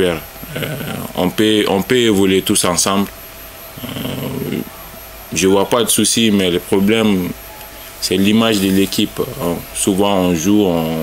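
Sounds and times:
man's creaky hesitation sound: 0.0s - 11.0s.

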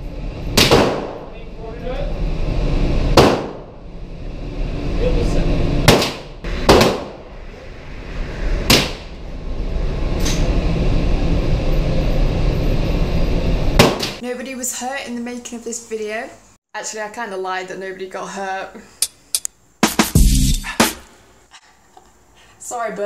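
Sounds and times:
low rumble: 0.0s - 13.8s.

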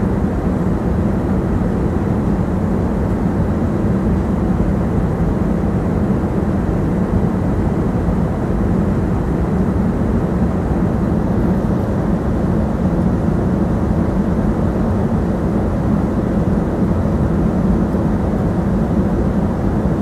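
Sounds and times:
airliner cabin roar: 0.0s - 20.0s.

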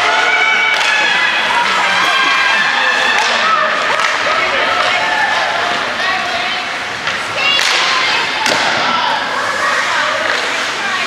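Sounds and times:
hubbub of crowd voices: 0.0s - 11.0s.

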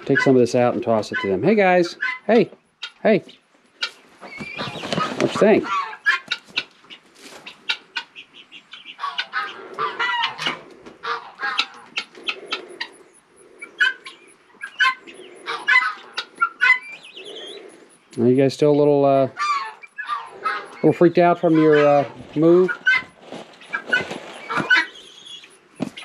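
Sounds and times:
chickens and guinea fowl clucking: 0.0s - 26.0s.

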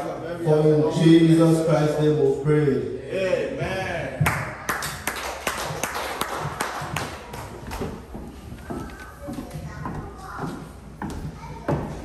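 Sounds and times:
sharp hand claps: 4.2s - 7.5s.

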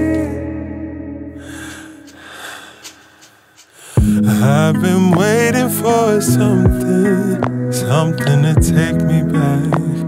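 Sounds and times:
slowed pop song: 0.0s - 10.0s
breathy hiss: 1.4s - 4.0s
mouth and breath noises: 1.4s - 4.0s
singer breathing: 1.4s - 4.4s.

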